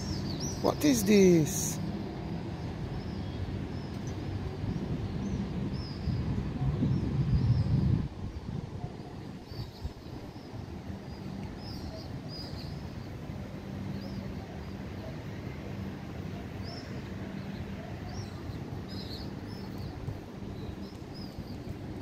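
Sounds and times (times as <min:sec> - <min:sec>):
small birds chirping: 0:02.6 - 0:15.2, 0:16.3 - 0:22.0.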